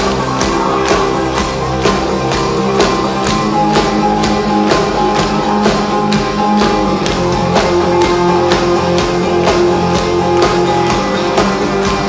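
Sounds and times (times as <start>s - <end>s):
drums steady beat: 0.0s - 12.0s
live band playing: 0.0s - 12.0s.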